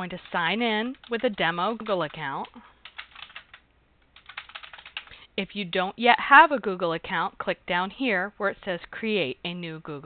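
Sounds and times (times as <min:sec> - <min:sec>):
typing on computer keyboard: 0:00.1 - 0:05.1.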